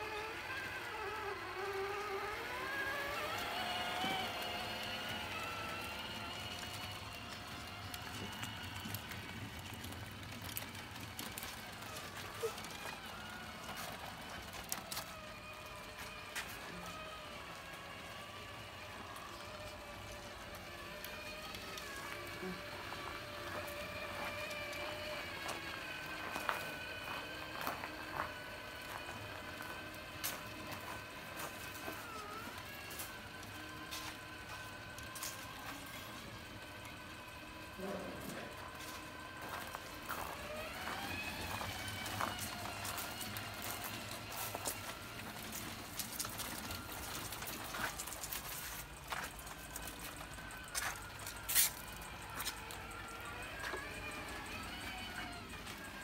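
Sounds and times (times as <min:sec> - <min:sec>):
electric motors whining: 0:00.0 - 0:56.0.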